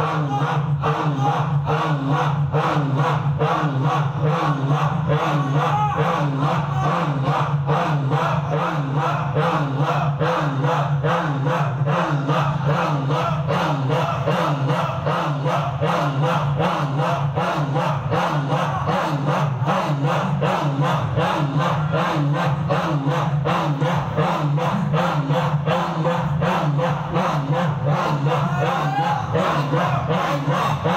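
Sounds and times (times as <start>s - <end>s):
men chanting in unison: 0.0s - 30.9s.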